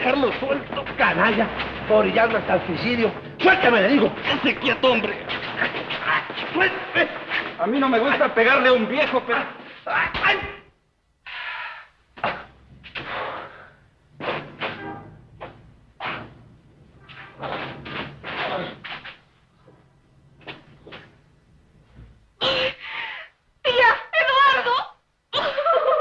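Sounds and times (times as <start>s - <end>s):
bodies shuffling and bumping: 0.0s - 7.8s, 14.1s - 22.3s
woman sobbing: 24.0s - 26.0s.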